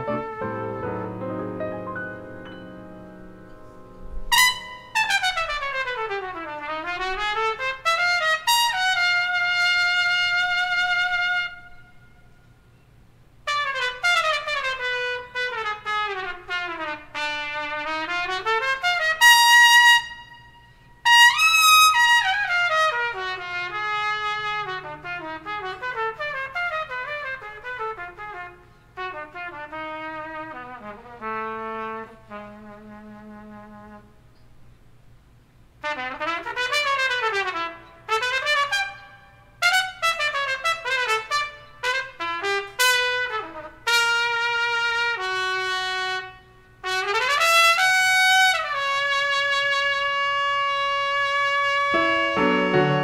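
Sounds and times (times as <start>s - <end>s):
jazz trumpet solo: 0.0s - 12.5s, 13.4s - 34.3s, 35.8s - 53.0s.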